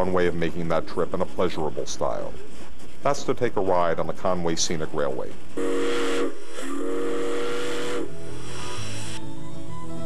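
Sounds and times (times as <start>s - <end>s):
steam locomotive whistle: 5.6s - 9.4s
steam hissing: 5.7s - 9.2s.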